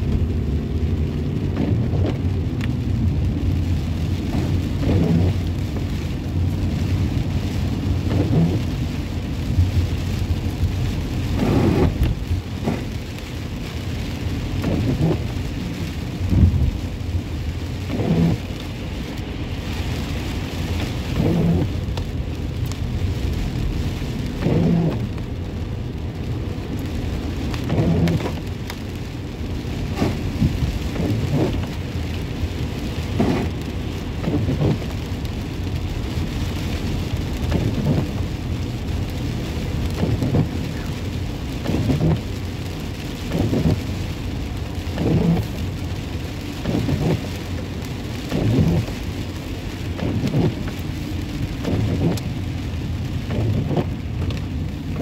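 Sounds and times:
low road rumble: 0:00.0 - 0:55.0
rain pattering on car: 0:00.0 - 0:55.0
windshield wipers sweeping: 0:00.0 - 0:55.0.

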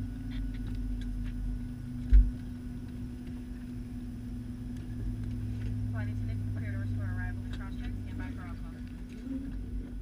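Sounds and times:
low aircraft cabin hum: 0:00.0 - 0:10.0.

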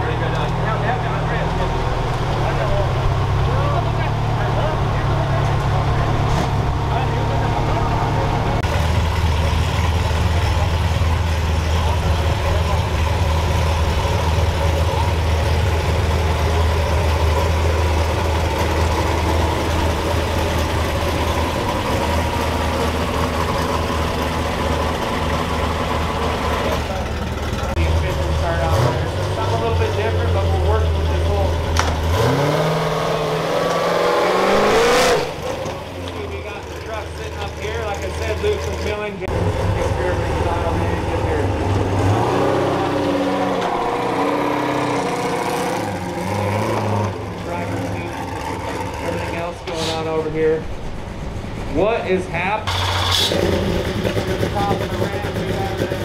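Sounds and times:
background voices: 0:00.0 - 0:50.8
truck engine idling and revving: 0:00.0 - 0:56.0.

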